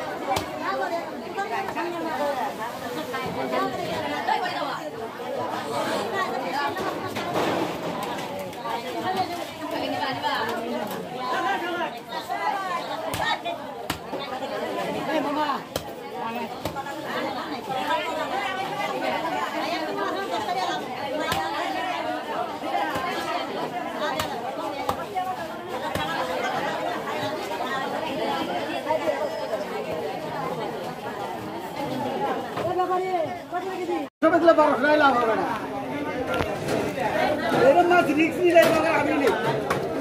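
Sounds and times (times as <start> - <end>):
chatter of voices: 0.0 - 40.0.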